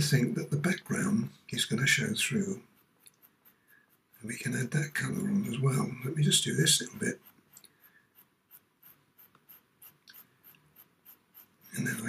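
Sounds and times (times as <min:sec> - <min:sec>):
pencil scratching on paper: 0:00.0 - 0:12.0.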